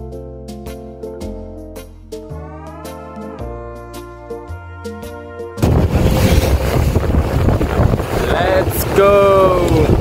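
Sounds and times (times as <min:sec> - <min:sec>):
music: 0:00.0 - 0:07.1
motorboat on water: 0:05.6 - 0:10.0
wind on microphone: 0:05.6 - 0:10.0.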